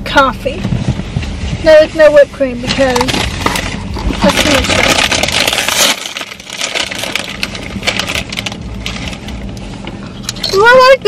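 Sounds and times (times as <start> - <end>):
crinkling and crunching: 0.8 - 10.9.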